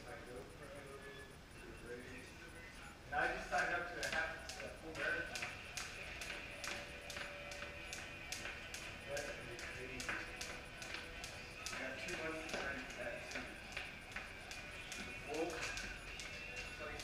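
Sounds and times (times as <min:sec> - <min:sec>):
voices: 0:00.0 - 0:17.0
music: 0:01.0 - 0:17.0
skipping rope slapping concrete: 0:04.0 - 0:17.0.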